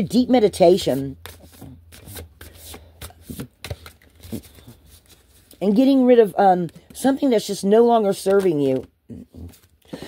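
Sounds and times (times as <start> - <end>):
cards being shuffled: 0.7 - 7.2, 8.0 - 9.9.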